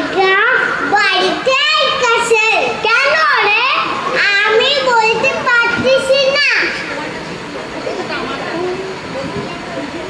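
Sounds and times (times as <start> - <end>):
children speaking: 0.0 - 10.0.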